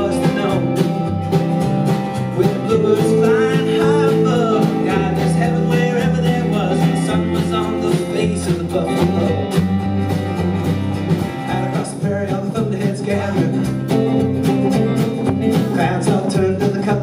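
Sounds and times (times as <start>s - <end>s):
acoustic guitar strumming: 0.0s - 17.0s
upright bass: 0.0s - 17.0s.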